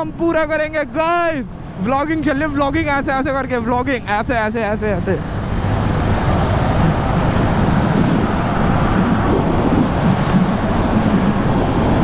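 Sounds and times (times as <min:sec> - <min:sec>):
wind rushing over microphone: 0:00.0 - 0:12.0
motorcycle engine cruising: 0:01.6 - 0:12.0.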